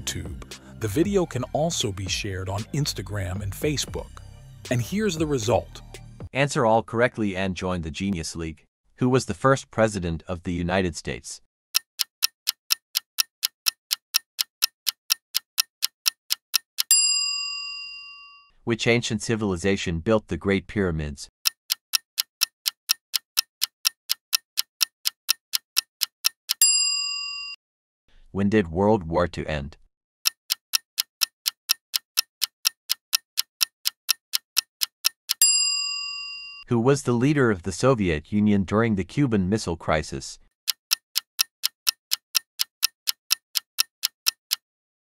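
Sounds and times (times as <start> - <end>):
clock ticking: 11.8 - 17.0, 21.4 - 26.6, 30.2 - 35.5, 40.7 - 44.6.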